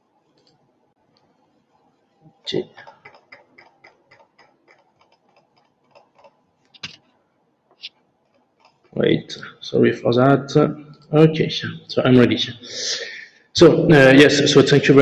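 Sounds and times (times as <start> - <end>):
mouse or keyboard clicks: 2.8 - 7.0.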